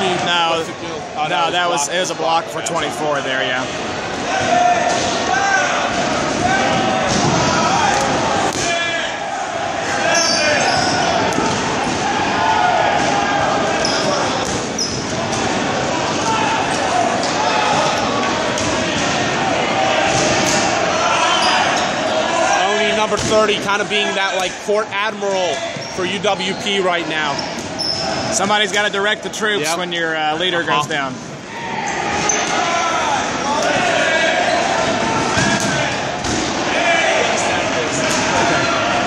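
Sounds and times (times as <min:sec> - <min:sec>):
players shouting: 0:00.0 - 0:39.0
balls bouncing on gym floor: 0:06.3 - 0:08.8, 0:10.6 - 0:12.1, 0:12.9 - 0:15.5, 0:23.0 - 0:23.7.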